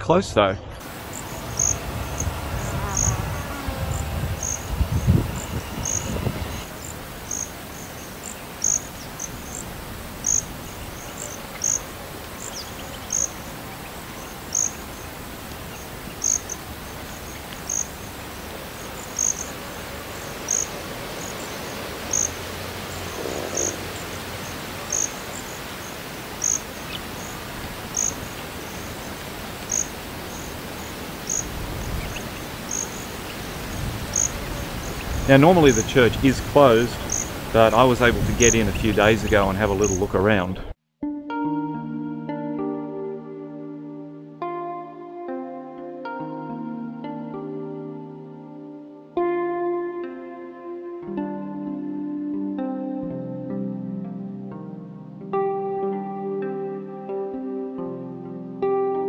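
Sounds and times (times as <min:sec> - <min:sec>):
insects chirping: 0:00.8 - 0:40.4.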